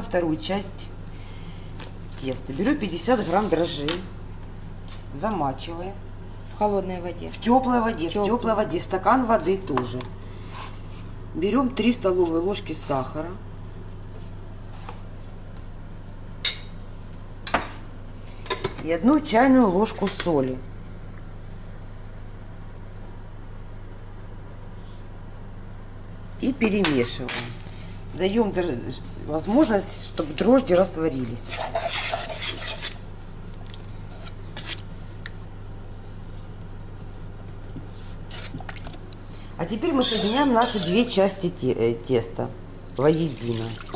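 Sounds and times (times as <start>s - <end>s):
steady low hum: 0.0s - 43.9s
cutlery scraping in metal bowl: 31.4s - 33.0s, 40.0s - 41.1s.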